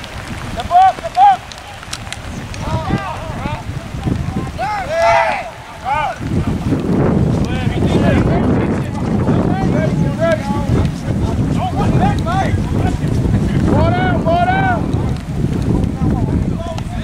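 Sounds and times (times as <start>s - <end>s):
wind buffeting microphone: 0.0s - 17.0s
players and spectators shouting: 0.4s - 6.9s, 7.5s - 15.2s.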